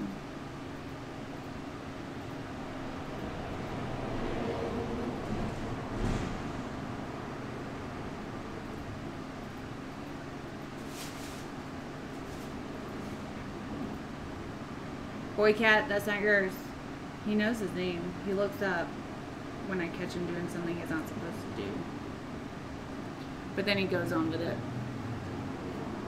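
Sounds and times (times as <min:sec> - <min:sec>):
low mechanical hum with hiss: 0:00.0 - 0:26.0.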